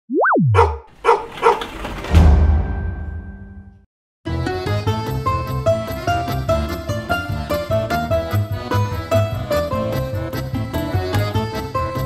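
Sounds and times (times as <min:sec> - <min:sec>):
tone sliding up and dropping: 0:00.0 - 0:00.8
dog barking: 0:00.5 - 0:01.7.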